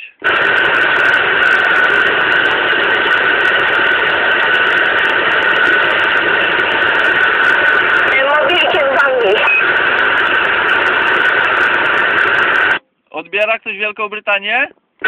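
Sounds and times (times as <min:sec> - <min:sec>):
radio static hiss: 0:00.0 - 0:14.6
high steady whistle: 0:07.2 - 0:12.8.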